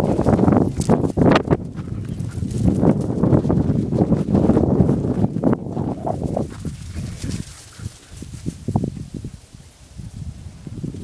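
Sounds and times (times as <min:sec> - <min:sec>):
running footfalls and paws on grass: 0:00.0 - 0:09.5.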